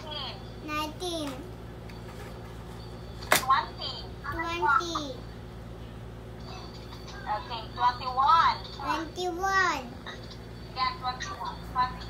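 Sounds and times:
low steady hum: 0.0s - 12.0s
young child speaking: 0.6s - 1.5s, 4.2s - 5.2s, 8.8s - 10.1s.

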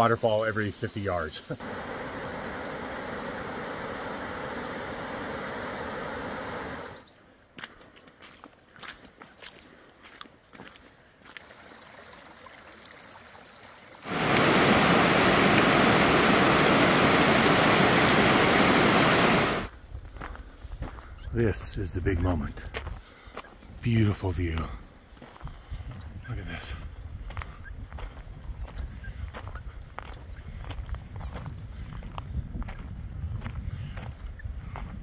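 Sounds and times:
loud steady rushing noise: 1.6s - 7.0s, 14.0s - 19.7s
water trickling over rocks: 11.2s - 14.7s
waterfall rushing: 14.0s - 19.7s.

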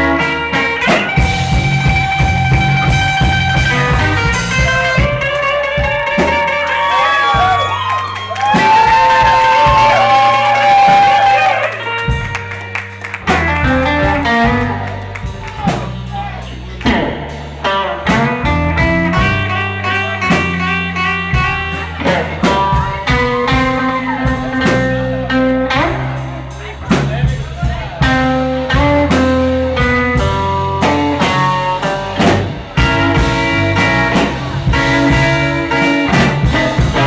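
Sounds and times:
drum kit: 0.0s - 37.0s
electric guitar lead: 0.0s - 37.0s
walking bass line: 0.0s - 37.0s.

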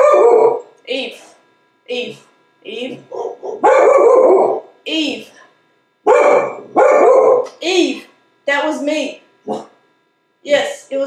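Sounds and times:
dog barking: 0.0s - 0.7s, 3.1s - 4.7s, 6.1s - 7.5s, 9.5s - 9.7s.

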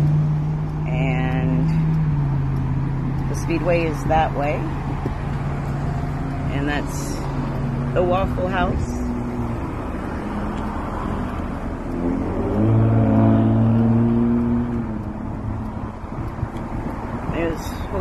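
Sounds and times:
low rumble of traffic: 0.0s - 18.0s
car driving past: 4.7s - 17.4s.

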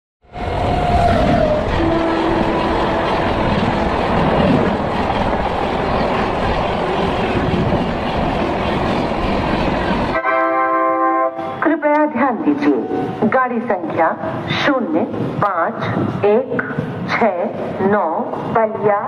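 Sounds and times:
train wheels rumbling on rail: 0.3s - 10.2s, 11.4s - 18.9s
steady horn tone: 1.7s - 3.7s.

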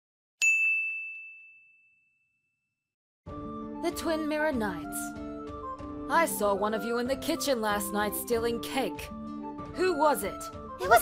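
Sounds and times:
bright bell ding: 0.4s - 2.6s.

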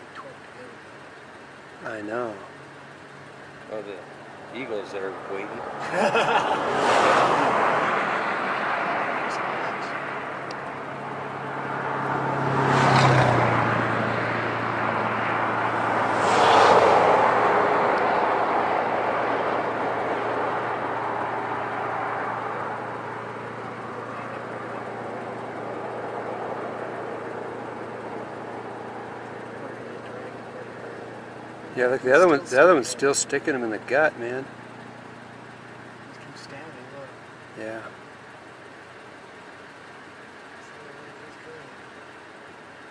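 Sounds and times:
low engine hum: 0.0s - 42.9s
vehicles passing: 0.0s - 42.9s.

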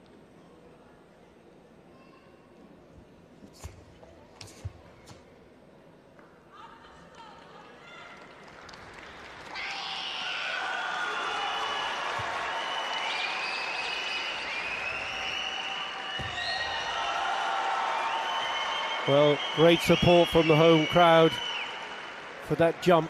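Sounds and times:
crowd cheering and applauding: 8.0s - 23.0s.

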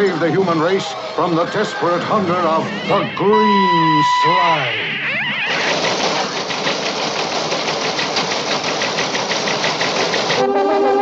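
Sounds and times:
rapidly pulsing noise effect: 4.3s - 10.5s.

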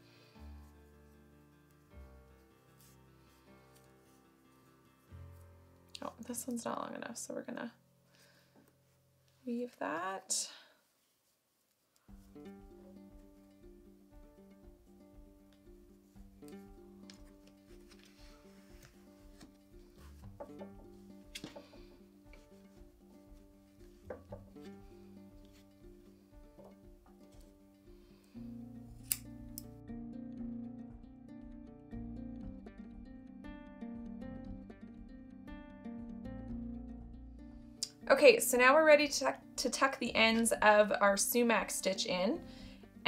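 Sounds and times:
soft music with plucked strings: 0.0s - 8.5s, 12.0s - 43.0s.

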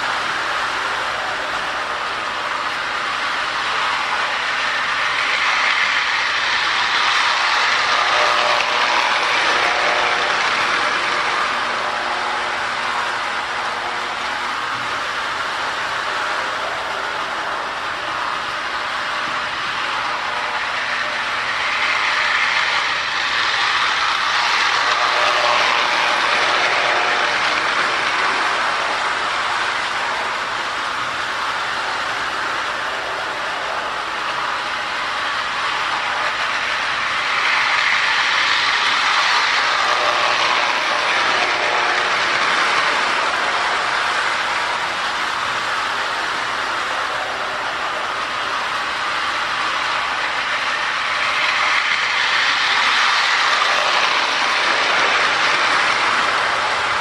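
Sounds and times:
toy train whirring and rattling: 0.0s - 57.0s.

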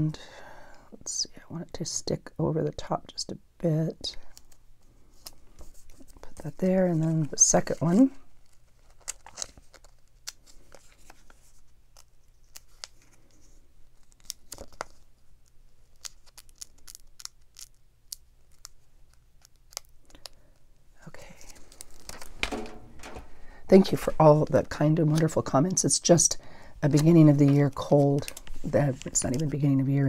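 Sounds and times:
plastic sticker crinkling: 5.2s - 20.4s, 21.3s - 25.8s, 26.8s - 29.8s.

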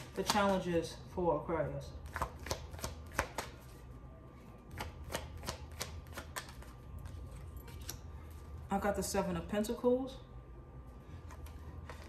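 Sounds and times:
cards being shuffled: 2.0s - 3.8s, 4.8s - 8.0s.

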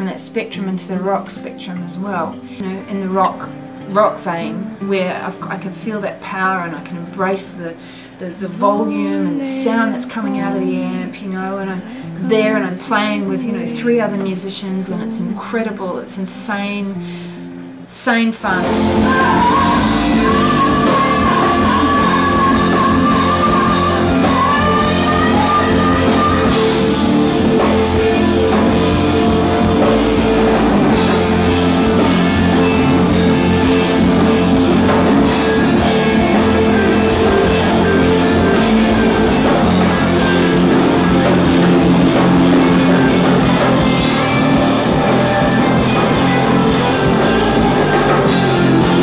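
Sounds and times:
person singing: 8.4s - 15.6s, 18.6s - 28.7s, 29.8s - 49.0s
loud rock music: 18.6s - 49.0s.

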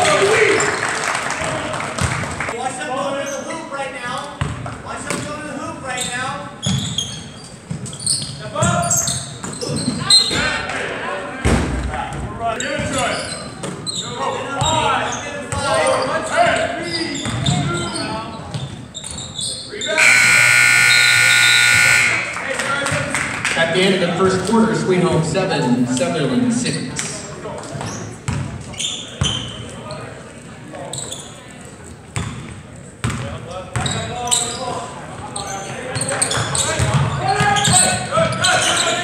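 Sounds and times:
scoreboard buzzer: 20.0s - 22.5s
crowd voices: 20.0s - 33.6s.

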